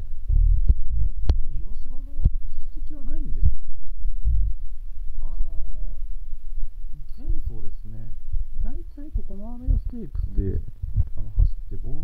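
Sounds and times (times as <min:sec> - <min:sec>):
loud low rumble: 0:03.4 - 0:07.0.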